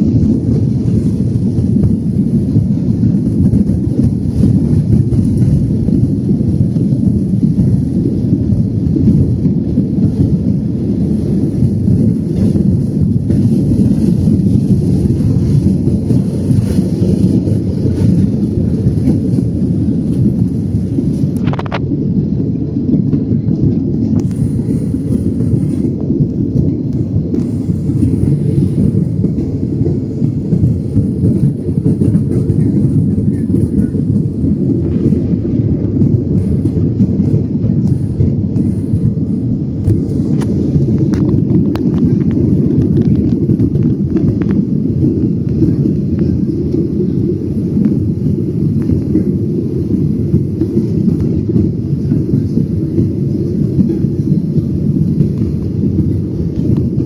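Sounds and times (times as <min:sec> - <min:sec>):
jet engines roaring in cabin: 0:00.0 - 0:57.0
runway roll rumble: 0:00.0 - 0:57.0.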